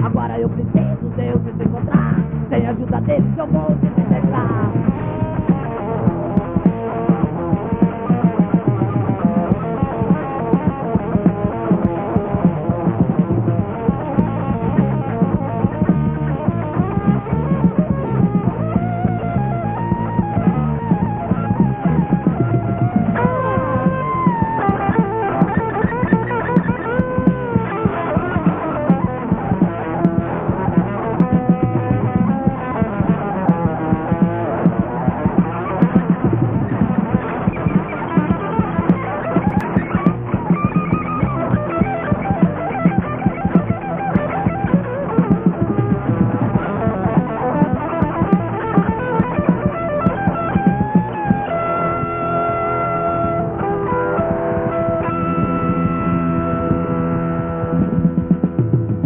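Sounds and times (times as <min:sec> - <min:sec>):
bass and drums: 0:00.0 - 0:59.0
electric guitar lead: 0:00.0 - 0:59.0.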